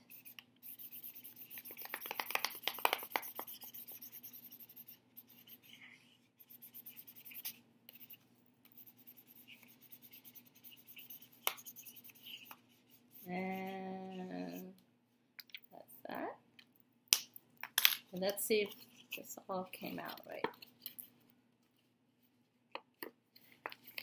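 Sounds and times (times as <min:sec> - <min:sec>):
marker scribbling on paper: 0:00.0 - 0:05.8, 0:06.4 - 0:13.8.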